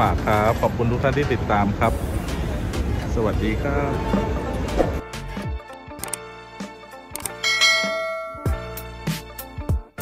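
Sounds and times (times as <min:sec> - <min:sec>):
background music with steady beat: 0:01.9 - 0:10.0
notification bell ding: 0:07.4 - 0:08.6.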